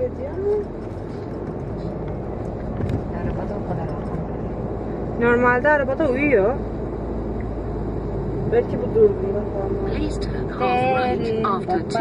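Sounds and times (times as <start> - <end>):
car engine and tyres rumble: 0.0 - 12.0.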